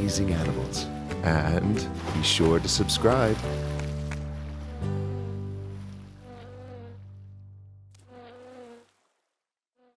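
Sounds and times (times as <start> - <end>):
wavering insect-like buzz: 4.0 - 7.2, 8.0 - 8.9.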